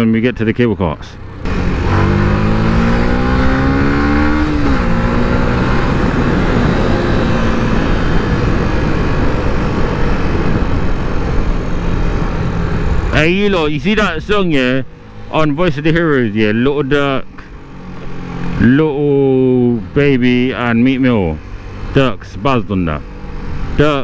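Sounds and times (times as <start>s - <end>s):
motorcycle engine accelerating: 1.2s - 24.0s
loud wind rush: 1.5s - 15.0s.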